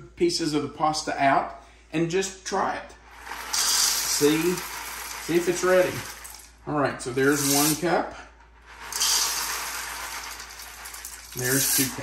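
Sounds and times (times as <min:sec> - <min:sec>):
dry pasta pouring into cup: 0:03.1 - 0:06.6, 0:07.2 - 0:07.8, 0:08.6 - 0:12.0.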